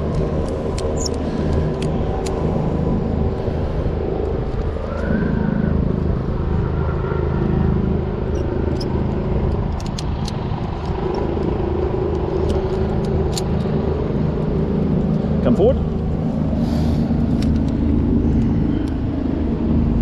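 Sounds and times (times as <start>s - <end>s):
helicopter rumble: 0.0s - 20.0s.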